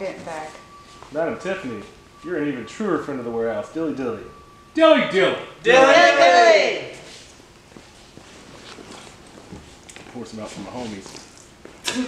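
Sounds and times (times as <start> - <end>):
faint footsteps on concrete: 7.0 - 11.8.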